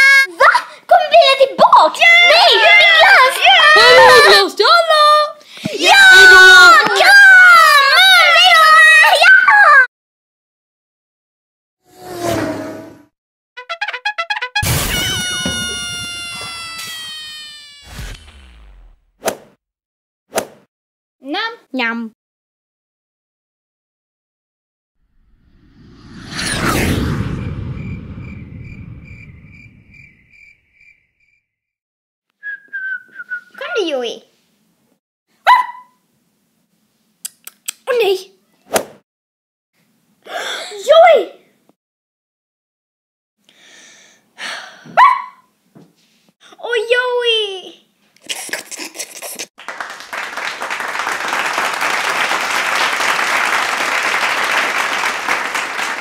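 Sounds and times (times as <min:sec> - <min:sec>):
cartoon thud: 0:14.3 - 0:19.5
short swish: 0:17.9 - 0:19.5, 0:20.3 - 0:20.7, 0:38.7 - 0:39.0
dog yelp: 0:35.4 - 0:36.0, 0:45.0 - 0:45.5.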